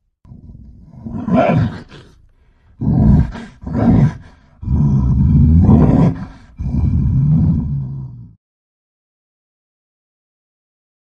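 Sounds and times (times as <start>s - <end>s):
deep low-pitched vocal bursts: 2.8s - 8.4s.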